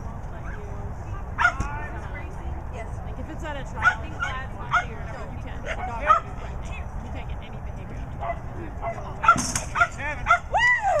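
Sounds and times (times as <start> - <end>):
dog yelp: 8.2 - 10.6.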